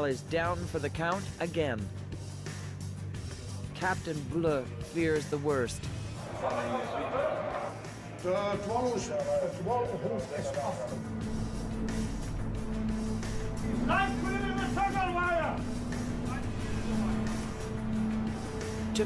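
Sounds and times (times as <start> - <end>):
background music: 0.0 - 19.0
low drone: 11.0 - 19.0
man speaking: 13.8 - 17.5.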